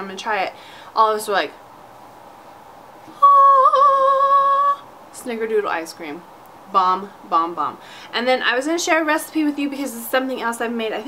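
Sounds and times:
woman holding high vocal note: 3.1s - 4.9s.

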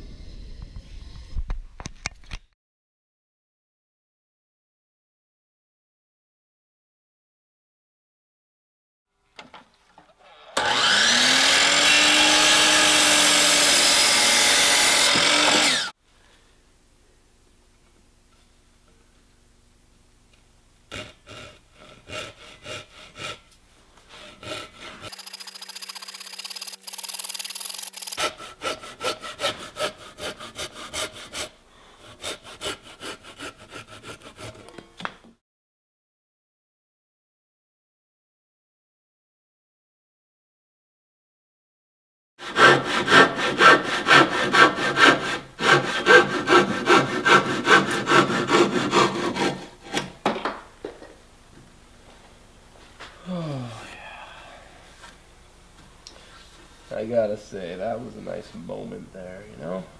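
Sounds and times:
power miter saw cutting board: 10.1s - 16.0s, 42.4s - 50.6s
handsaw cutting wood: 10.3s - 16.0s, 20.9s - 23.5s, 24.1s - 34.7s, 42.4s - 50.2s.

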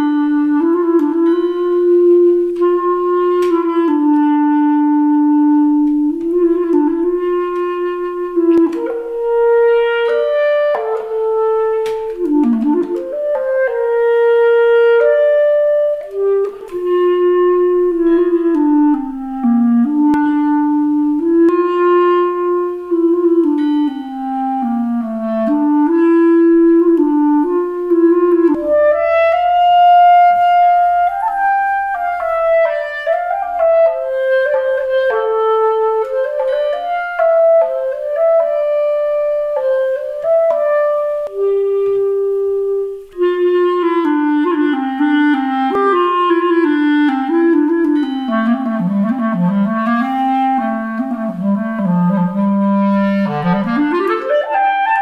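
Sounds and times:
solo clarinet melody: 0.0s - 55.0s.

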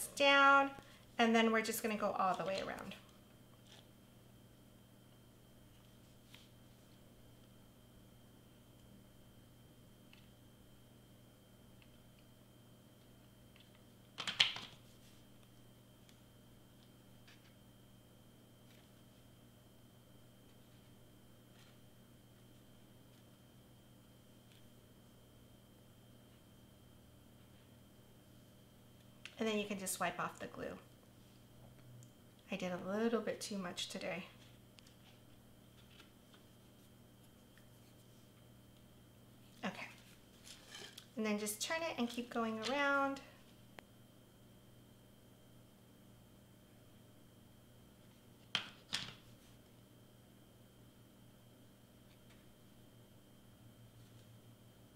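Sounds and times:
faint steady hum: 0.0s - 54.9s.

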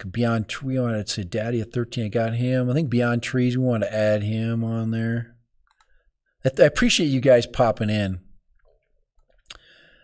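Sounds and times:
person speaking: 0.0s - 9.6s
faint breath: 9.5s - 10.0s.

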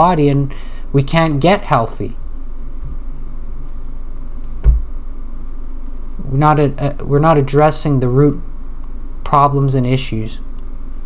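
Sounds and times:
low steady hum: 0.0s - 11.0s
dull knock: 4.6s - 4.9s.

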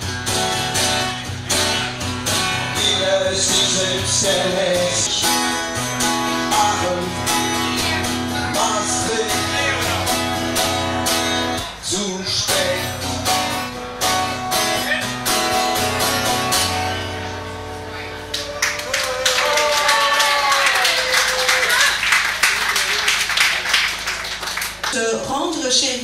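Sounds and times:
acoustic guitar strumming chords: 0.0s - 18.6s.

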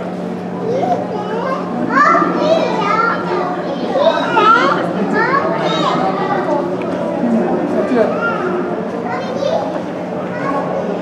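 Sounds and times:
children chattering and calling out: 0.0s - 11.0s
steady low hum: 0.0s - 11.0s.

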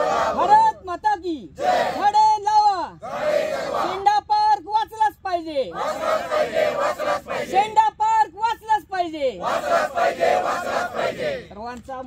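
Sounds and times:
crowd shouting in unison: 0.0s - 0.6s, 1.6s - 2.1s, 3.0s - 4.1s, 5.7s - 7.7s, 9.4s - 11.5s.

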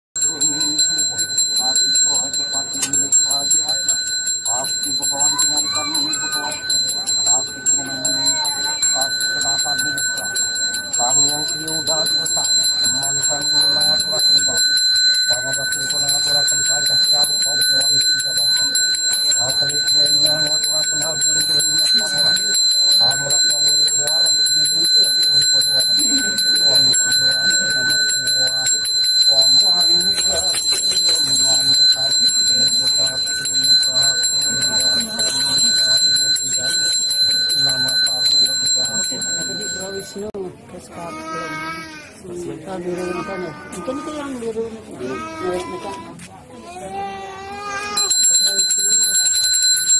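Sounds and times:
hand bell ringing: 0.2s - 40.3s, 47.8s - 49.9s
voices: 0.2s - 49.9s.

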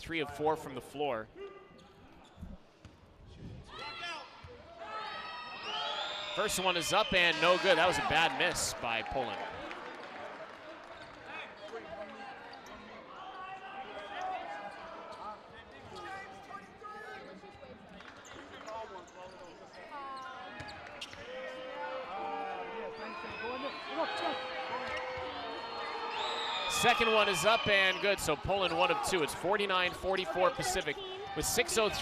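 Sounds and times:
crowd voices and shouts: 3.6s - 18.0s, 18.9s - 32.0s.

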